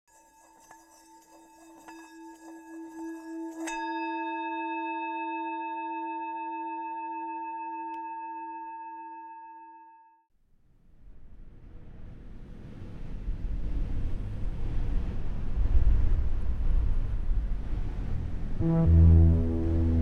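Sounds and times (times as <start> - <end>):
low bell-like ringing tone: 0.2 - 10.1.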